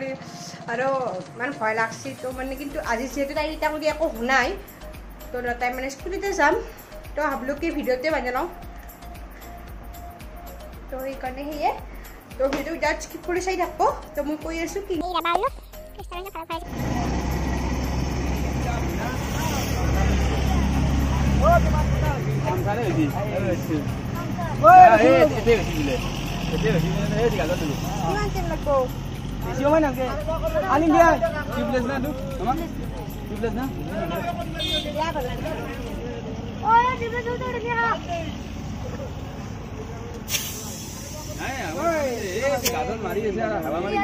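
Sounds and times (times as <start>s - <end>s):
low outdoor background noise: 16.6s - 44.0s
sudden hiss: 40.2s - 43.0s.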